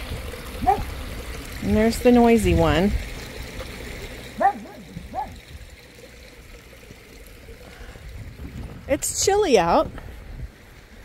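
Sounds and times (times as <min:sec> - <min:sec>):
small waterfall running: 0:00.0 - 0:11.0.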